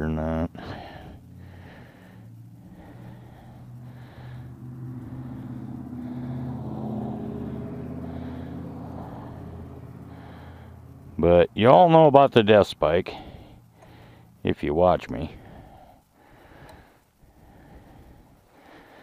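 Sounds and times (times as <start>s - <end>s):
pickup truck driving past: 0.6s - 11.4s.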